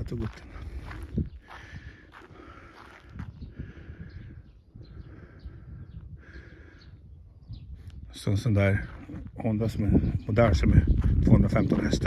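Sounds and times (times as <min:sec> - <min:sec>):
footsteps on grass: 0:00.0 - 0:03.4.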